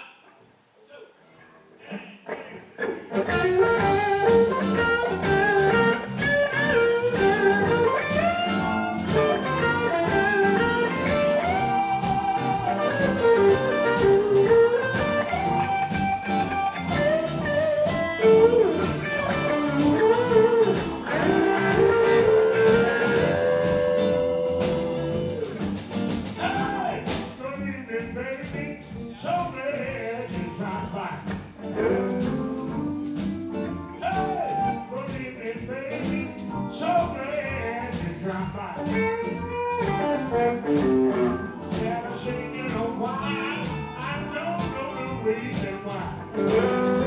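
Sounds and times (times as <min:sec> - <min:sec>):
electric guitar lead with bent notes: 0:01.4 - 0:27.4, 0:31.5 - 0:35.0, 0:38.6 - 0:47.0
electric blues band playing: 0:01.5 - 0:47.0.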